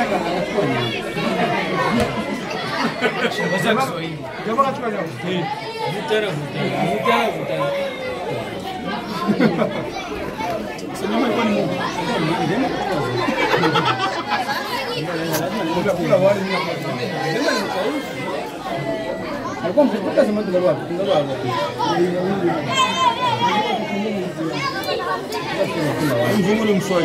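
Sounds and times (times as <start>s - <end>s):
crowd of diners chattering: 0.0s - 27.0s.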